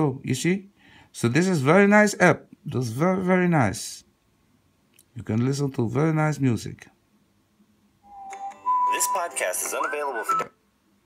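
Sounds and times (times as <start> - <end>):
whistle-like tones: 8.0 - 10.4.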